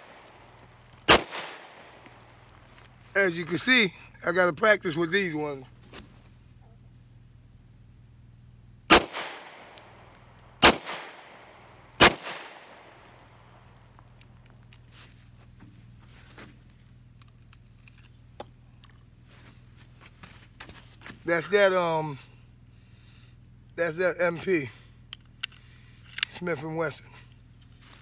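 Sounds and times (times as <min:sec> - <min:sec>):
pistol shots with echo: 0:01.1 - 0:02.0, 0:08.9 - 0:10.0, 0:10.6 - 0:13.3
gun handling clicks: 0:17.1 - 0:19.1, 0:25.1 - 0:26.5.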